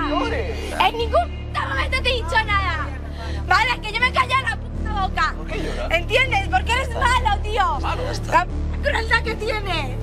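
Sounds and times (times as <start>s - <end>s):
bass line background music: 0.0s - 10.0s.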